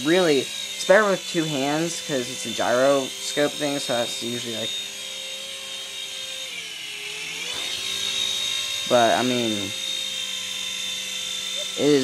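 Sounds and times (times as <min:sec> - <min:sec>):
toy helicopter motor whine: 0:00.0 - 0:12.0.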